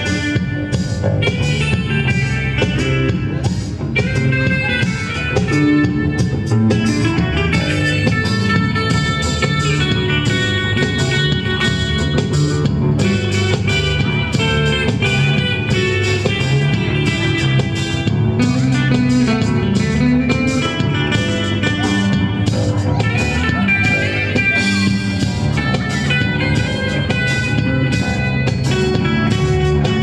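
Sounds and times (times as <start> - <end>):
band rhythm backing: 0.0 - 30.0
electric guitar melody: 0.0 - 30.0.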